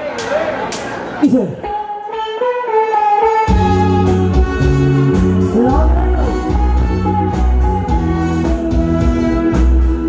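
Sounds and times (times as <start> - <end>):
live band playing: 0.0 - 10.0
melodic line of held notes: 1.6 - 10.0.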